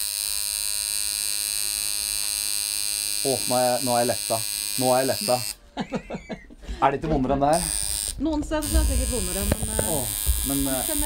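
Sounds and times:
tattoo machine buzzing: 0:00.0 - 0:05.6, 0:07.5 - 0:11.0.

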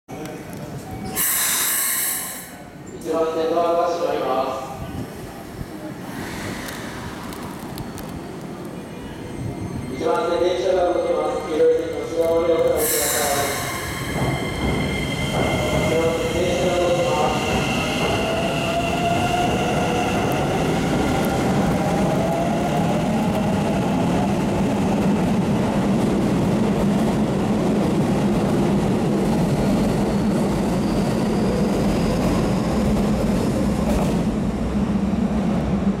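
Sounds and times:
train wheels on rails: 0:11.8 - 0:35.6.

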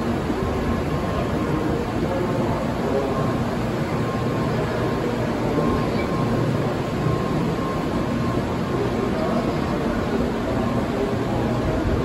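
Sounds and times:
faint high tone: 0:05.4 - 0:09.9.

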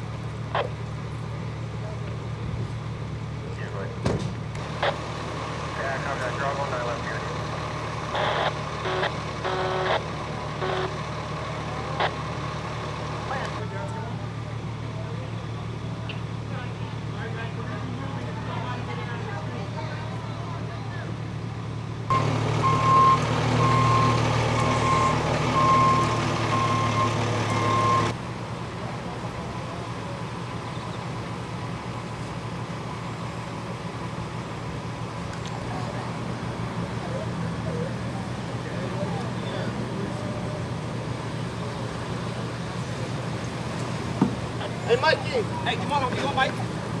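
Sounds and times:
diesel engines idling: 0:00.0 - 0:47.0
heavier engine: 0:00.0 - 0:47.0
reverse alarm beeping: 0:08.1 - 0:11.0, 0:22.1 - 0:28.1.

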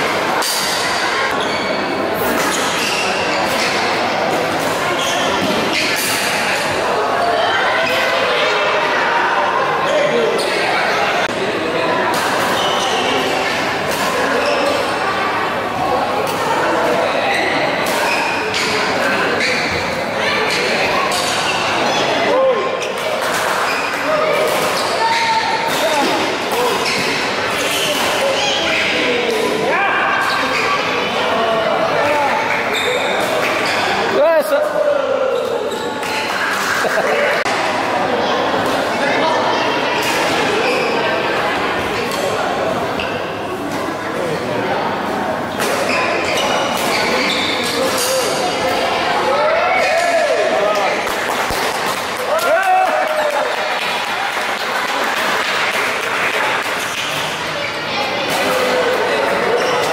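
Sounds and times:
spectators chattering: 0:00.0 - 0:59.9.

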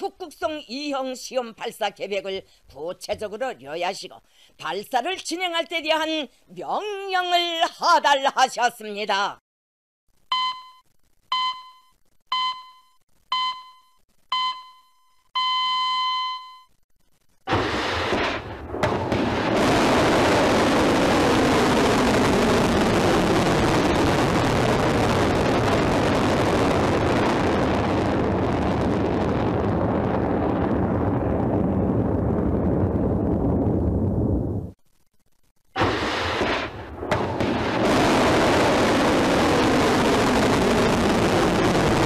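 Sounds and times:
long electronic beep: 0:10.3 - 0:16.7
short electronic beeps: 0:10.3 - 0:16.8.

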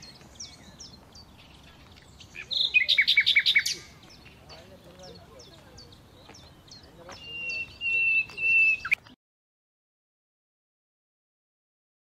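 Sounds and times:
small birds chirping: 0:00.0 - 0:09.2.

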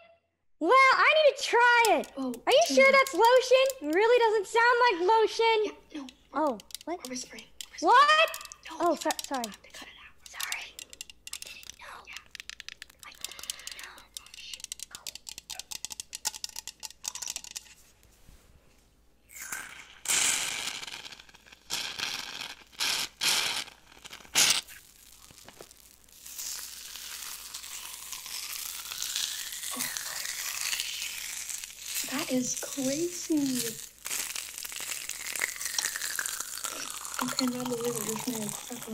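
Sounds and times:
lotion crackling at microphone: 0:01.8 - 0:04.7, 0:06.0 - 0:17.5, 0:19.3 - 0:38.9.

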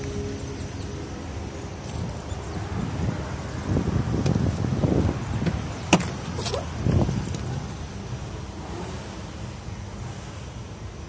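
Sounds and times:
car door rustling and knocking: 0:04.1 - 0:07.6.

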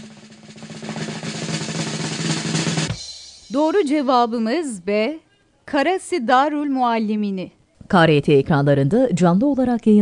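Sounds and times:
final drum hit: 0:00.0 - 0:03.6
rapid snare drum roll: 0:00.0 - 0:03.7.

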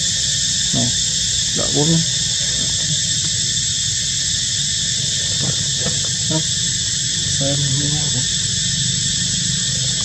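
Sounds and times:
high-pitched insect drone: 0:00.0 - 0:10.0
low steady hum: 0:00.0 - 0:10.0
human voice: 0:00.8 - 0:01.0, 0:06.2 - 0:06.5.

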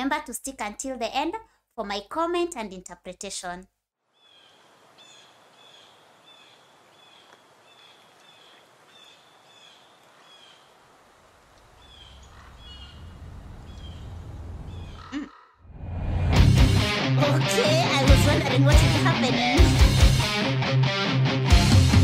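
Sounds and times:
low rumble: 0:12.2 - 0:15.0, 0:15.7 - 0:16.8.

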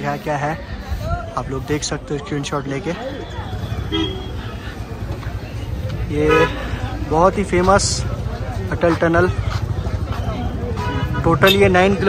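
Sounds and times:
traffic rumble: 0:00.0 - 0:12.0
vehicle horns honking: 0:03.3 - 0:04.6, 0:06.1 - 0:06.8, 0:10.7 - 0:12.0.

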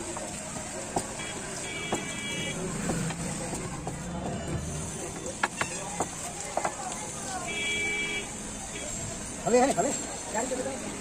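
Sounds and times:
street traffic noise: 0:00.0 - 0:11.0
high steady horn tone: 0:01.2 - 0:02.6, 0:07.4 - 0:09.0.

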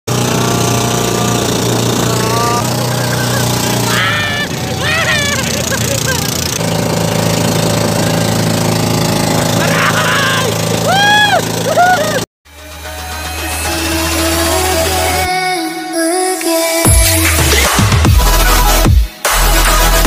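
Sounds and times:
boat engine running hard: 0:00.1 - 0:12.2
voices shouting: 0:02.0 - 0:06.4, 0:09.5 - 0:12.2.

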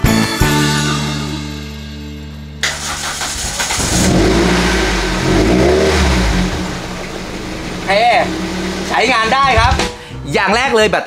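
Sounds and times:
car engine revving and idling: 0:02.6 - 0:09.9.

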